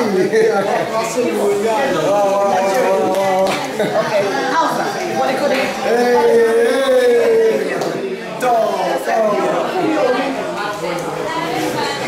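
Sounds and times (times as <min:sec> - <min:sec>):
overlapping voices: 0:05.2 - 0:08.6.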